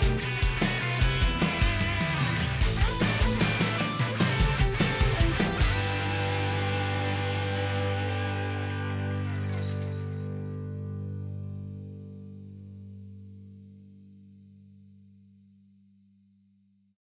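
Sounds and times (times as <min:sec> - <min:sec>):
distorted electric guitar chord ringing: 0:00.0 - 0:14.7.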